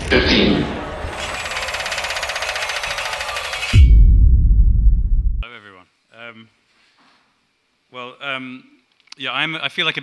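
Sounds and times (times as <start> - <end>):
rapid mechanical rattle: 1.2 - 3.8.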